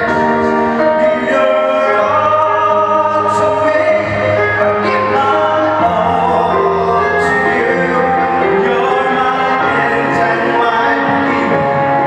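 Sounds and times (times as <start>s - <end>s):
man singing a slow ballad: 0.0s - 12.0s
musical accompaniment: 0.0s - 12.0s.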